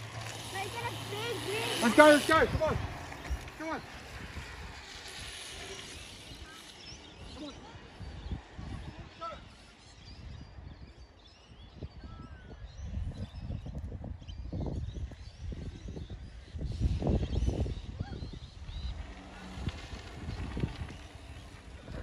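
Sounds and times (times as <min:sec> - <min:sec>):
faint birds chirping: 0:00.0 - 0:22.0
wind buffeting microphone: 0:00.0 - 0:22.0.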